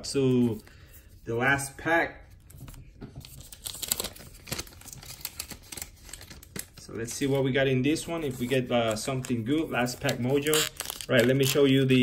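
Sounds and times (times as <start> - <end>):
wrapper crinkling and tearing: 3.3 - 6.9, 8.0 - 12.0.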